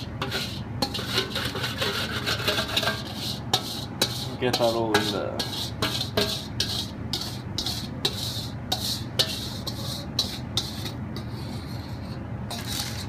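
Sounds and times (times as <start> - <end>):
spatula scraping a pot: 0.0 - 13.0.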